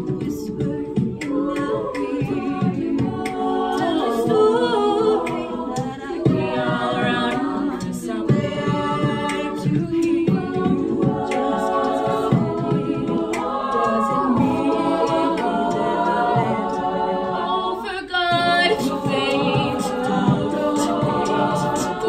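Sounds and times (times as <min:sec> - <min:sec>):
women singing a cappella: 0:00.0 - 0:22.0.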